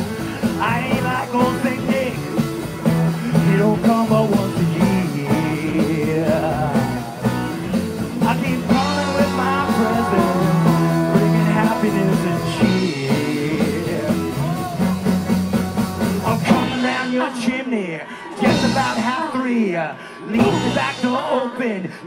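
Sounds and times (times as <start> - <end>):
person singing: 0.0 - 7.4, 8.2 - 14.8, 16.2 - 22.0
electric guitar: 0.0 - 19.2
live rock and roll band: 0.0 - 22.0.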